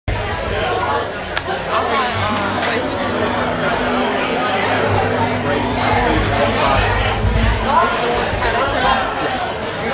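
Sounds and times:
crowd chatter: 0.1s - 9.9s.

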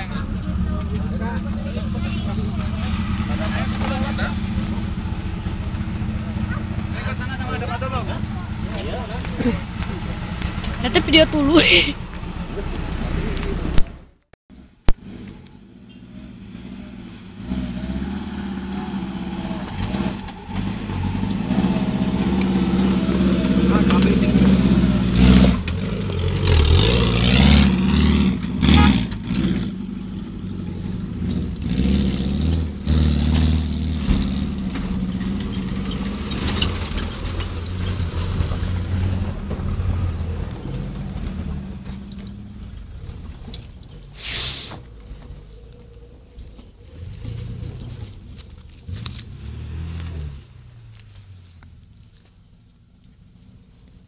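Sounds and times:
off-road vehicle engine under load: 0.0s - 54.0s.

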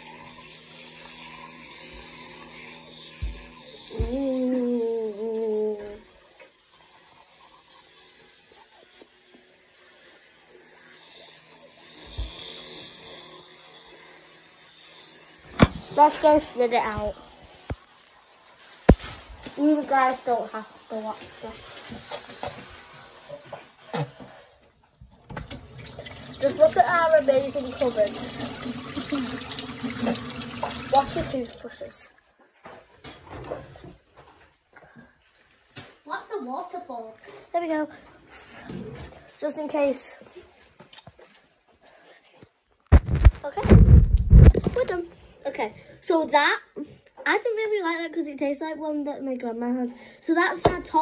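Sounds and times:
tap water running into sink: 0.0s - 4.4s, 25.3s - 31.8s
electric toothbrush buzzing: 0.0s - 24.6s, 25.4s - 31.9s.

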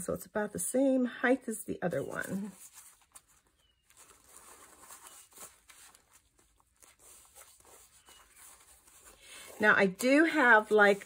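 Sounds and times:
soft rustling of paper: 1.5s - 11.0s.

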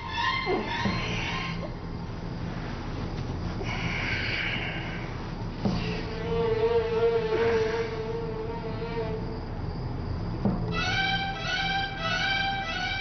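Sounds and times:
low hum: 0.0s - 13.0s
steady buzzing tone: 0.8s - 13.0s
bowed string music: 5.0s - 13.0s.

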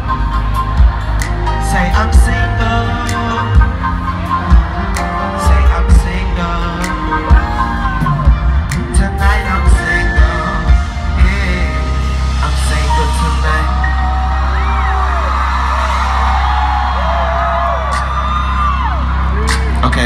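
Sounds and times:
crowd whooping and yelling: 0.0s - 10.2s, 13.0s - 20.0s
heavy bass beats: 0.0s - 13.4s.

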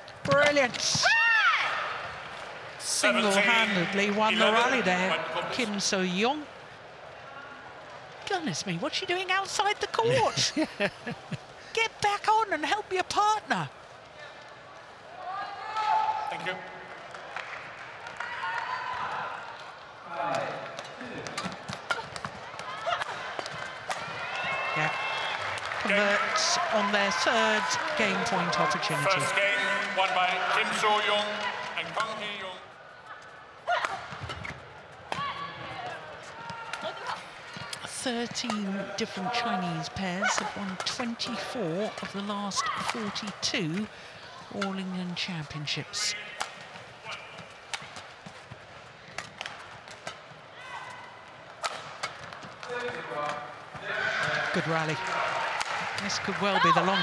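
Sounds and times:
crowd noise: 0.0s - 57.0s
court shoes squeaking: 33.1s - 55.0s
rackets striking shuttlecock: 46.4s - 50.3s, 51.5s - 53.5s.

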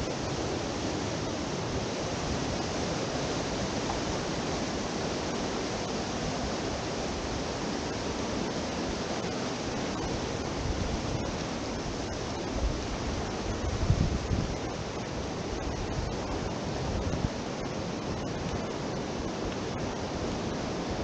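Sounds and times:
water rushing over rocks: 0.0s - 21.0s.

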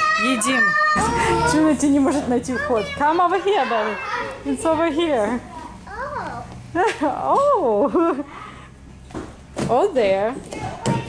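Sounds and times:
toddler babbling: 5.9s - 6.4s.

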